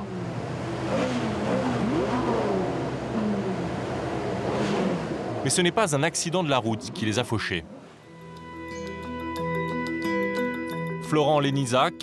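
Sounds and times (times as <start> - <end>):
sports car engines revving: 0.0 - 8.0.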